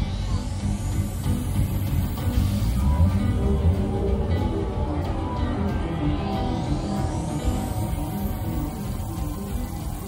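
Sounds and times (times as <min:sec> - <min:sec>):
rising electronic sweep: 0:00.0 - 0:10.0
rock band with heavy bass: 0:00.0 - 0:10.0.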